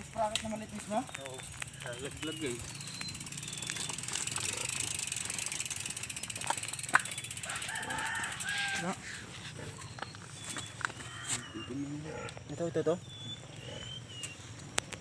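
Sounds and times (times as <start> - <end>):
bicycle freewheel hub ticking: 0.0 - 9.1.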